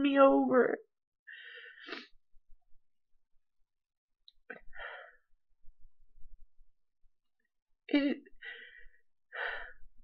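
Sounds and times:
woman sobbing: 0:07.9 - 0:08.4.

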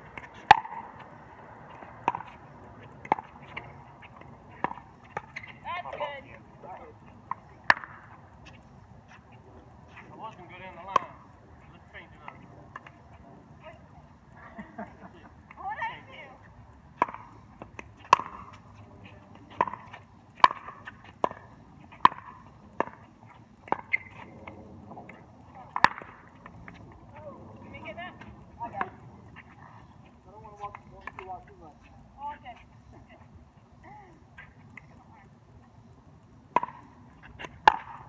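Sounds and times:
paddles striking pickleball: 0:00.1 - 0:00.9, 0:01.7 - 0:02.4, 0:03.0 - 0:06.0, 0:07.3 - 0:08.6, 0:17.0 - 0:18.8, 0:19.4 - 0:26.8, 0:36.5 - 0:38.0
players' voices: 0:01.7 - 0:16.5, 0:22.6 - 0:35.3.

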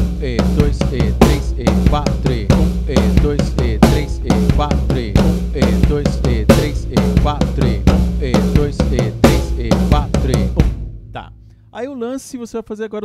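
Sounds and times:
acoustic drum kit groove: 0:00.0 - 0:11.8.

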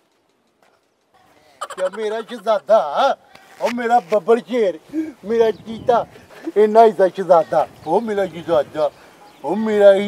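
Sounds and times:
man's voice: 0:01.6 - 0:10.0.

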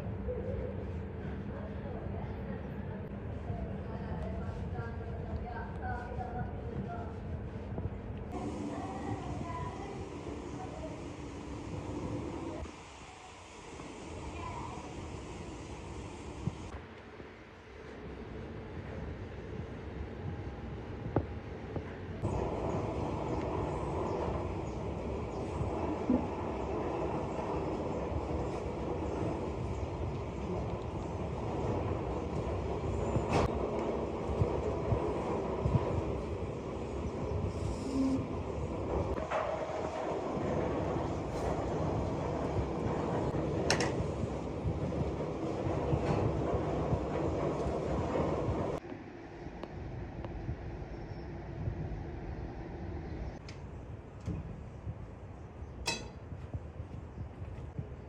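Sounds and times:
rumbling workshop noise: 0:20.7 - 0:48.8, 0:53.2 - 0:58.0.

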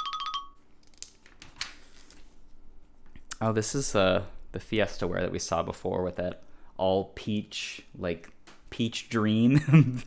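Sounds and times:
hands tapping and rustling pages: 0:00.8 - 0:02.4.

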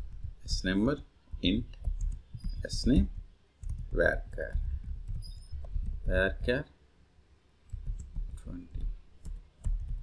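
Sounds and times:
keyboard typing clicks: 0:01.4 - 0:06.5, 0:07.7 - 0:10.0.

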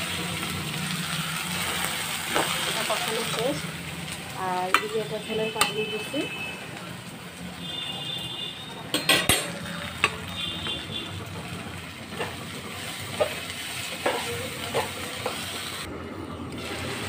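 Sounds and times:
food sizzling in a pan: 0:00.0 - 0:15.9
spatula knocking and scraping pan: 0:13.1 - 0:15.5.

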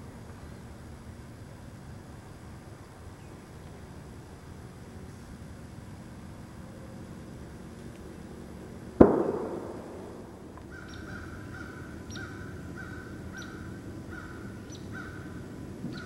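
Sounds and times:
faint outdoor background: 0:00.0 - 0:16.0
loud sharp bang: 0:09.0 - 0:10.5.

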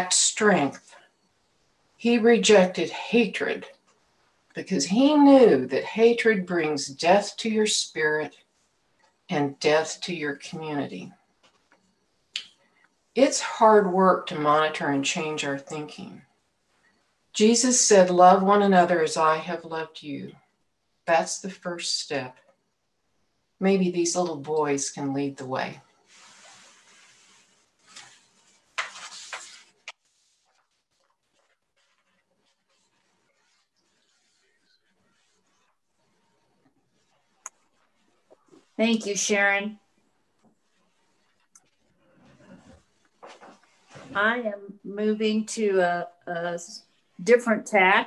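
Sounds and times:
woman speaking: 0:00.0 - 0:01.0, 0:02.0 - 0:03.7, 0:04.5 - 0:08.3, 0:09.3 - 0:11.1, 0:13.2 - 0:16.2, 0:17.4 - 0:20.4, 0:21.0 - 0:22.3, 0:23.6 - 0:25.8, 0:38.6 - 0:39.8, 0:44.0 - 0:48.0.

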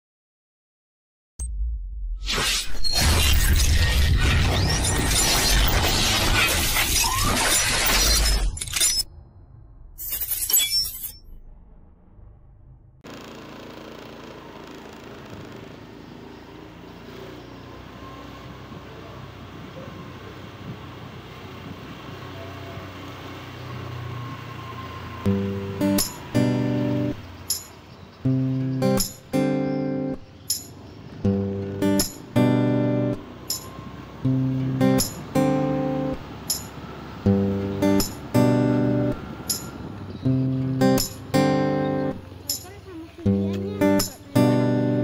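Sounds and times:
loud noisy crash-like burst: 0:02.2 - 0:08.2
night street ambience: 0:02.3 - 0:45.0.

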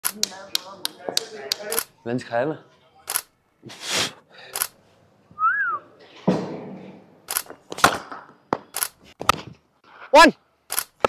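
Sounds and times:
voices talking: 0:00.0 - 0:03.3.

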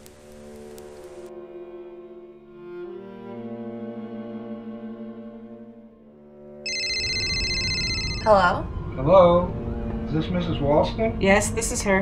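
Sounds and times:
low string music: 0:00.0 - 0:12.0
mobile phone ringtone: 0:06.7 - 0:08.7.

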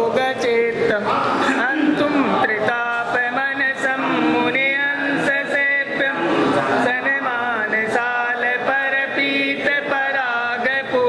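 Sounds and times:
men chanting a hymn: 0:00.0 - 0:11.0.

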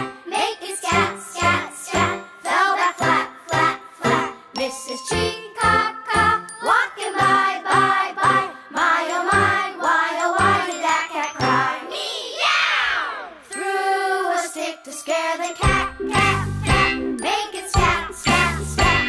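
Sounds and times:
bouncy bright accompaniment: 0:00.0 - 0:12.0, 0:13.1 - 0:19.0
person singing children's song: 0:00.0 - 0:12.4, 0:13.0 - 0:19.0.

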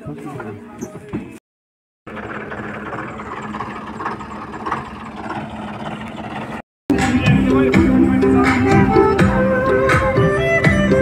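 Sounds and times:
vehicle engine running: 0:02.1 - 0:09.0.

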